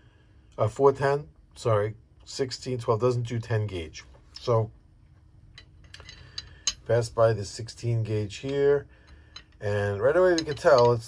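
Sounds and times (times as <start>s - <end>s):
light metallic clicks and taps: 5.5s - 6.9s, 8.4s - 11.0s.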